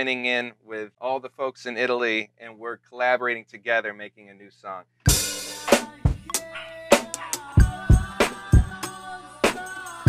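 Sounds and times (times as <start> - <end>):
hard drum strikes: 5.1 - 8.8.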